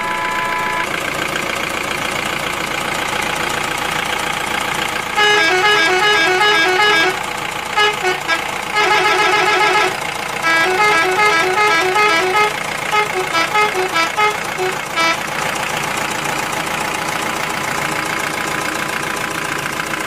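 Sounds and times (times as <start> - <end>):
musical vehicle horn beeping: 0.0 - 1.1, 5.1 - 15.4
engine drone: 0.0 - 20.0.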